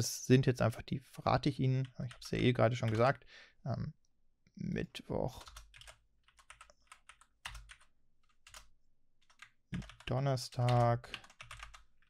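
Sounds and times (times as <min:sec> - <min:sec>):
computer keyboard typing: 0:02.0 - 0:03.1, 0:05.4 - 0:12.0.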